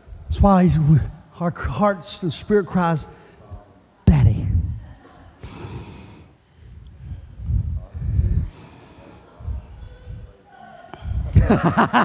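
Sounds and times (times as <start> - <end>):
man breathing into microphone: 5.4 - 10.0.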